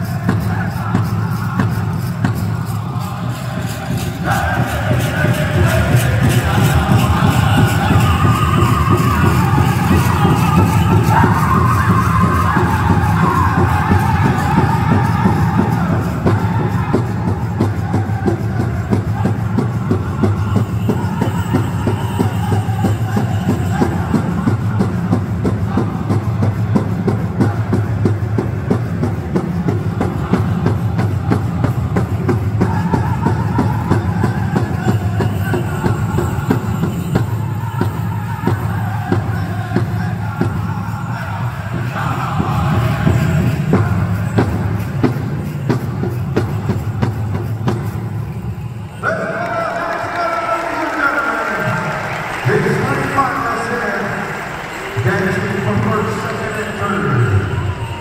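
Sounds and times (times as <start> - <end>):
people singing: 0.0 - 58.0.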